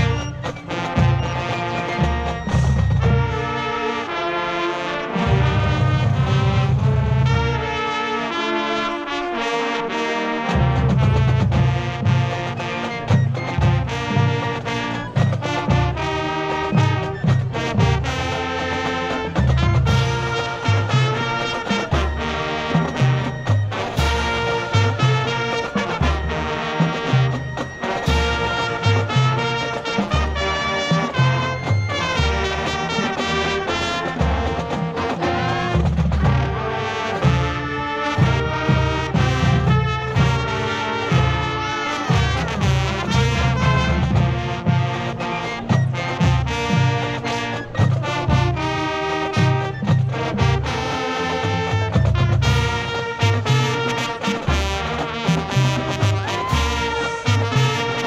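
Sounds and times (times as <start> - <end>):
marching band playing: 0.0 - 58.0.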